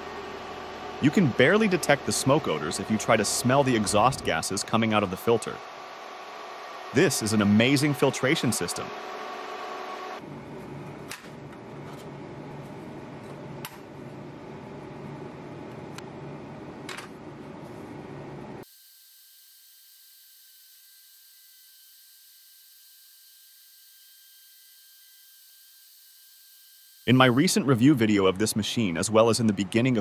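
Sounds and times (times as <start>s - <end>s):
fan noise: 0.0s - 18.6s, 27.1s - 30.0s.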